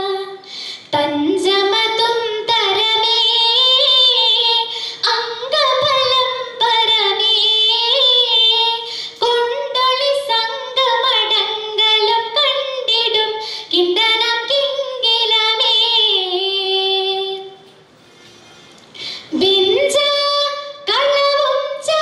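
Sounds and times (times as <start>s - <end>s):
girl singing unaccompanied: 0.0s - 17.7s, 19.3s - 22.0s.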